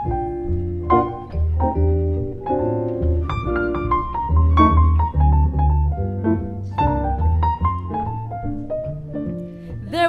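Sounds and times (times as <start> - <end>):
jazz piano melody: 0.0 - 10.0
walking upright bass: 0.0 - 10.0.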